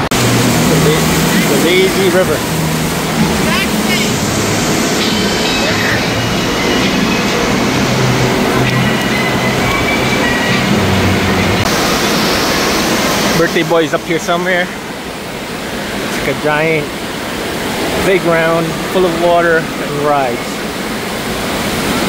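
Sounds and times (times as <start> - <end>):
distant voices: 0.0 - 22.0
running and splashing water: 0.0 - 22.0.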